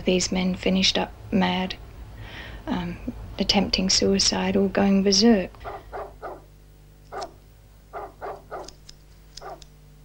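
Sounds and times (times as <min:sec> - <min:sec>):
dog barking: 0:05.6 - 0:06.5, 0:07.1 - 0:08.8, 0:09.4 - 0:09.7.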